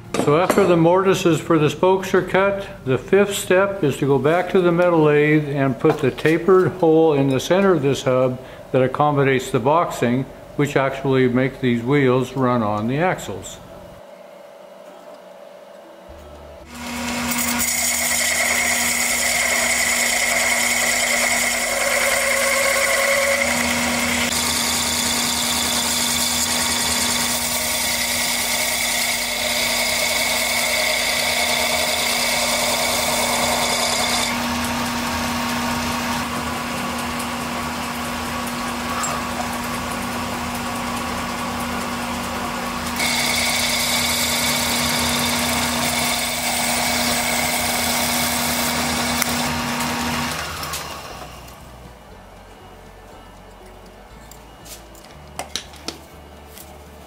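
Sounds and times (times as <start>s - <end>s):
boring bar cutting wood: 16.6s - 51.6s
lathe humming: 16.6s - 51.8s.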